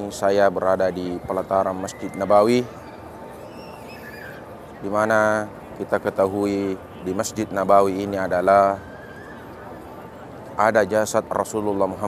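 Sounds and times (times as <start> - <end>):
faint wavering high calls: 1.2 - 4.7, 8.3 - 10.3.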